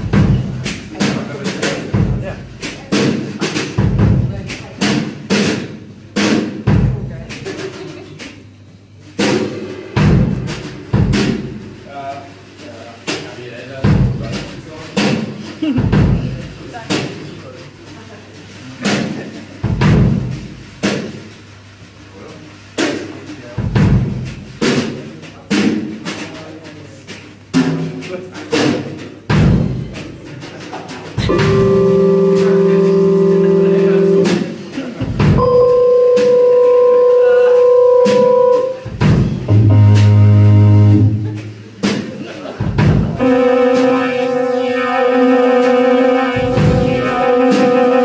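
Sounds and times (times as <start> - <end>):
bass drum and cymbal strikes: 0.0 - 17.3, 18.8 - 48.0
keyboard notes: 31.2 - 34.8, 35.4 - 41.4, 43.2 - 48.0.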